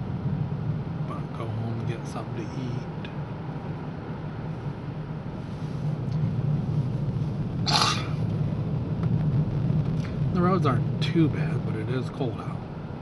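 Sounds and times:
car engine and tyres drone: 0:00.0 - 0:13.0.

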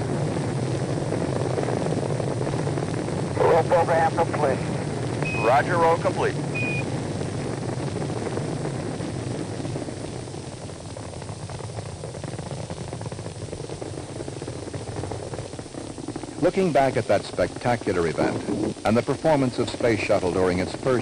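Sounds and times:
rocket launch roar: 0:00.0 - 0:21.0.

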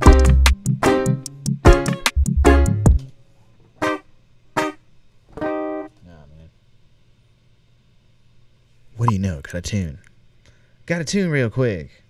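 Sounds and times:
guitar notes: 0:05.4 - 0:06.0.

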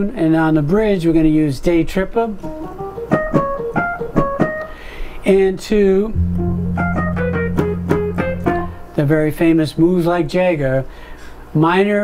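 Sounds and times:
keyboard playing short notes: 0:06.2 - 0:09.0
low bass note: 0:06.2 - 0:09.0.

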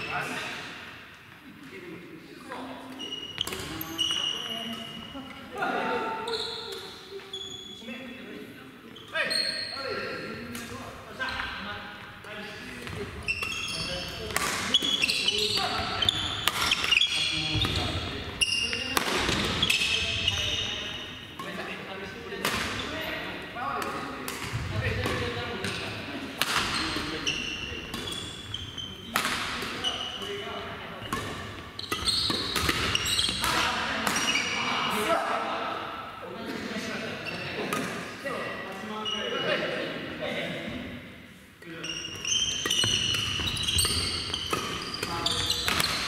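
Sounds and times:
players' voices: 0:00.0 - 0:46.0
racket hitting shuttlecock: 0:14.3 - 0:15.8, 0:16.4 - 0:17.0, 0:18.7 - 0:19.9, 0:22.4 - 0:22.8, 0:23.8 - 0:27.0, 0:29.1 - 0:29.8, 0:31.1 - 0:34.3, 0:42.5 - 0:46.0.

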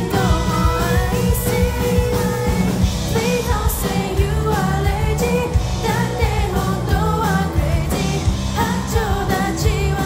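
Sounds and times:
drum kit steady beat: 0:00.0 - 0:10.0
electric bass: 0:00.0 - 0:10.0
electric guitars: 0:00.0 - 0:10.0
girl singing lead: 0:00.0 - 0:10.0.

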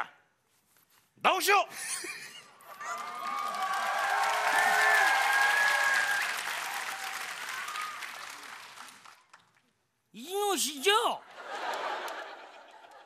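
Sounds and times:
audience applauding and cheering: 0:02.6 - 0:09.7.

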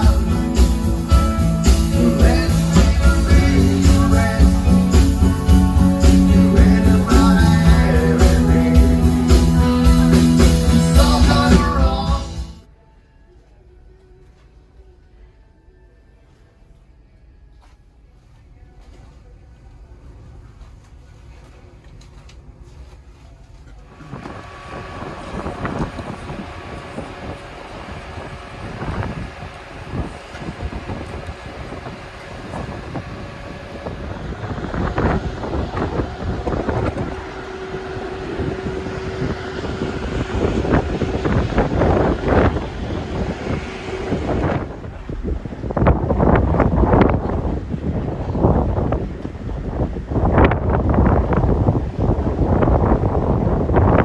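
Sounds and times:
ship engine hum: 0:14.8 - 0:54.0
wind buffeting microphone: 0:23.8 - 0:54.0.

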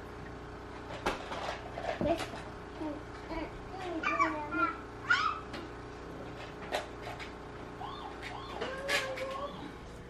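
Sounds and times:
child's high-pitched squeal: 0:04.0 - 0:05.4, 0:07.8 - 0:09.7.

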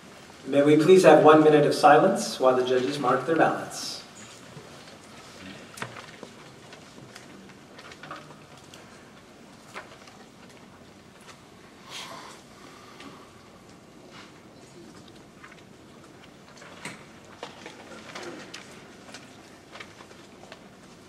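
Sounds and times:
audience rustling: 0:00.0 - 0:21.0.

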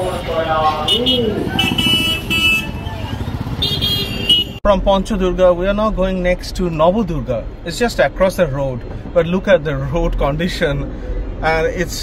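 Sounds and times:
people's voices: 0:00.0 - 0:03.2
engines rumbling: 0:00.0 - 0:12.0
horn beeps: 0:00.7 - 0:04.6.

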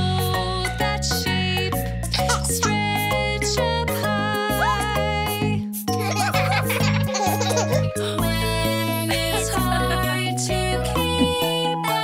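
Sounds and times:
upbeat children's song music: 0:00.0 - 0:12.0
cartoon children giggling: 0:05.9 - 0:08.0, 0:08.9 - 0:10.2.

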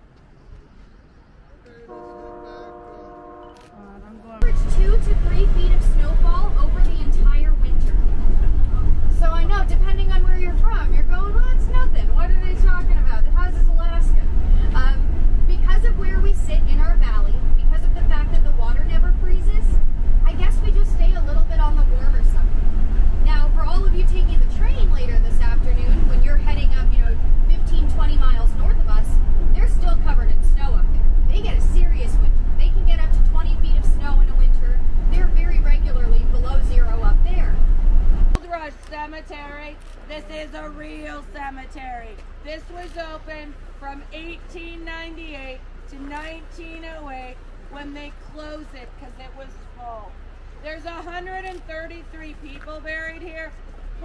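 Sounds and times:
bus engine and road rumble: 0:00.0 - 0:54.0.

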